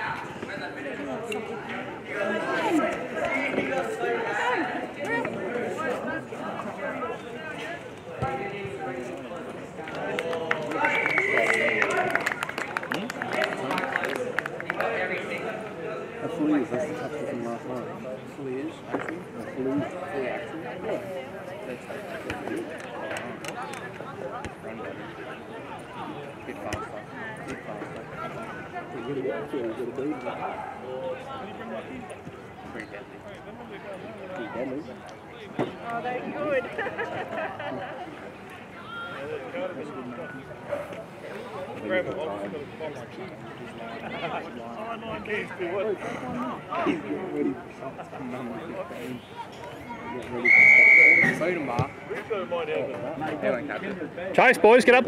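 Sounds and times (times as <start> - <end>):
spectators talking and calling out: 0.0 - 55.0
referee's whistle blast: 50.4 - 52.0.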